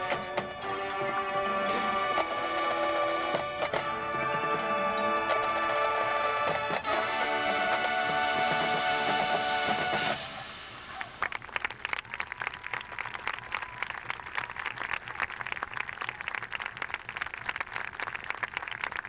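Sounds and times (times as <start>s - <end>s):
brass chord: 0.0s - 11.0s
audience applause: 6.9s - 19.0s.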